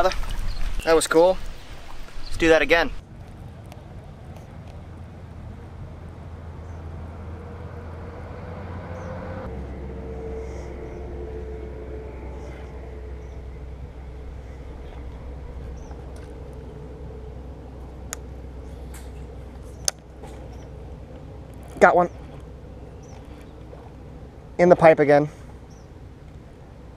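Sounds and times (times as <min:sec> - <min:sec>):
low outdoor rumble: 0:00.0 - 0:26.9
faint wavering hum: 0:02.9 - 0:26.9.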